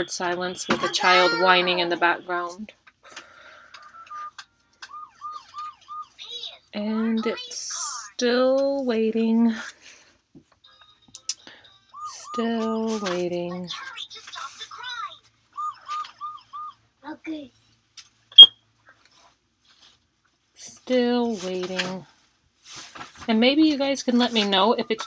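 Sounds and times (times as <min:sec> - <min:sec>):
child whining: 0:00.9 - 0:01.8.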